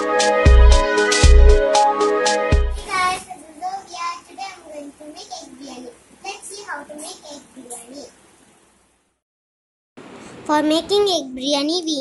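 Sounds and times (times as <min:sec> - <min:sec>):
intro music chord: 0:00.0 - 0:02.8.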